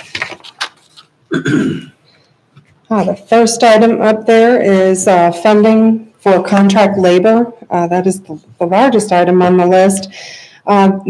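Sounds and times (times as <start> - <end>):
person clearing throat: 1.3 - 2.0
person coughing: 1.3 - 2.0.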